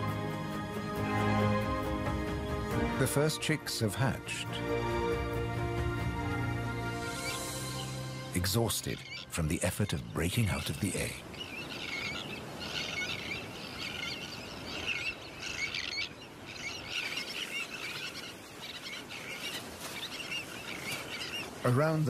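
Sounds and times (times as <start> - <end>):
terns giving chattering calls: 6.8 - 22.0.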